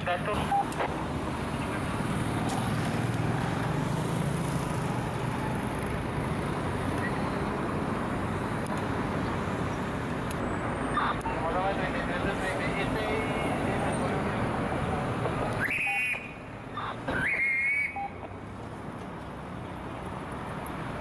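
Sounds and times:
street traffic noise: 0:00.0 - 0:21.0.

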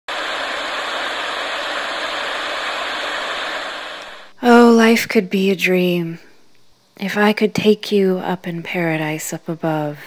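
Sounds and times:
television static hiss: 0:00.1 - 0:10.0.

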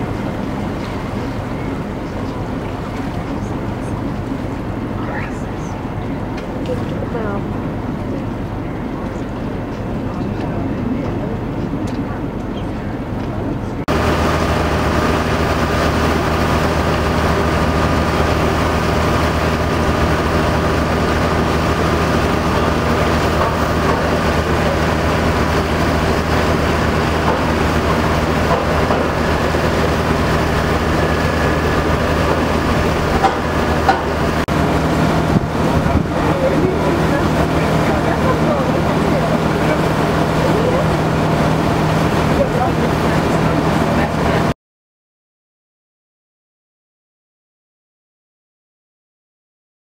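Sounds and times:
engine drone with tones: 0:00.0 - 0:44.5.

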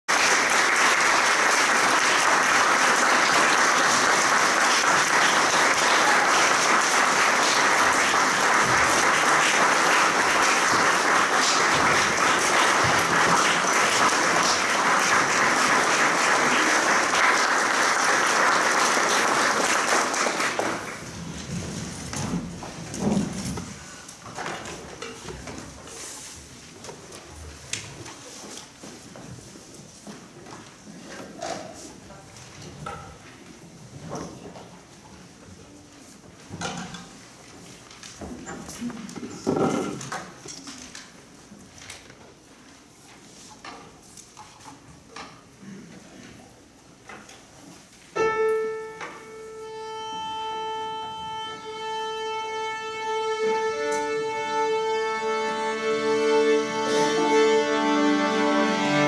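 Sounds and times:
audience applauding: 0:00.1 - 0:21.2.

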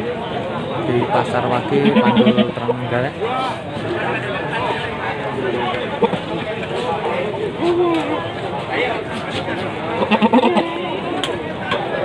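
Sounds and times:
crowd chatter: 0:00.0 - 0:12.0
goat bleating: 0:01.8 - 0:02.6, 0:10.0 - 0:10.9.

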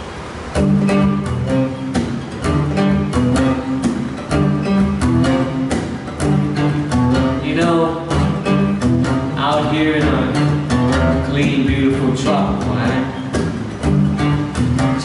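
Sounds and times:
guitar strumming chords: 0:00.0 - 0:15.0.

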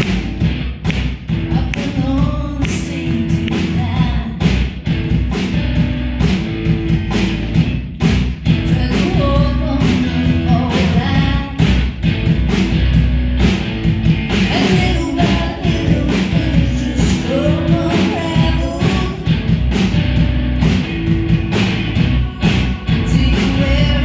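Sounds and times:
live rock band playing: 0:00.0 - 0:24.0.

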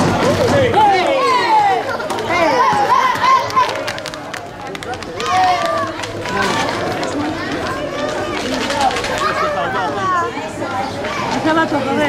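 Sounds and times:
running footsteps on pavement: 0:00.0 - 0:12.0.

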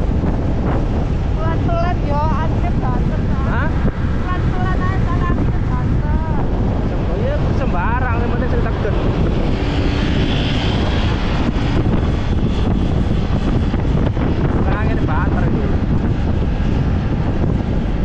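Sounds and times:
motorcycle engine: 0:00.0 - 0:18.0
road noise: 0:00.0 - 0:18.0
wind rushing over microphone: 0:00.0 - 0:18.0
person speaking: 0:01.3 - 0:09.4, 0:14.6 - 0:15.8.

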